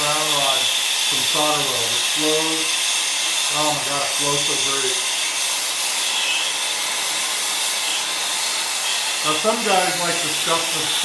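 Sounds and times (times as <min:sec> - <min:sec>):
brazing torch hissing: 0:00.0 - 0:11.0.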